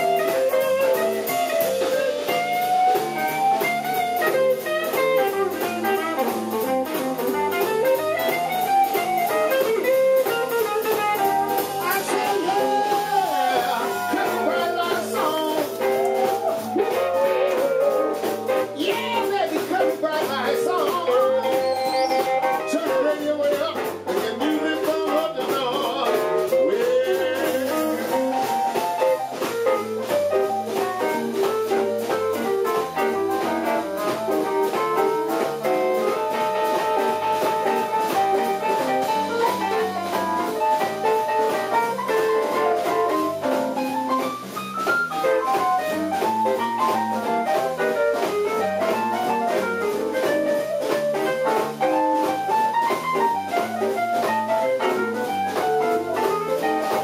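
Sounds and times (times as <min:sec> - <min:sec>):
electric guitar lead notes: 0:00.0 - 0:25.2, 0:25.9 - 0:57.0
drum kit: 0:00.0 - 0:57.0
electric bass: 0:00.0 - 0:57.0.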